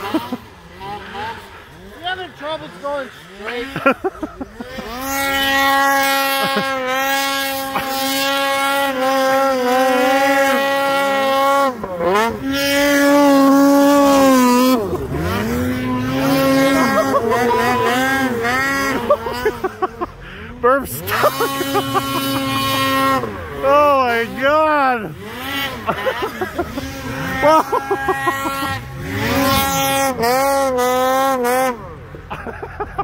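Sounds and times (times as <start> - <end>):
snowmobile engine revving: 0.0 - 33.0.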